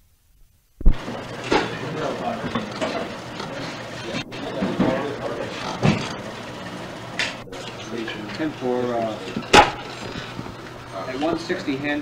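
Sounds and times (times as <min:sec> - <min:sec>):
sharp knocks: 0:09.4 - 0:09.9.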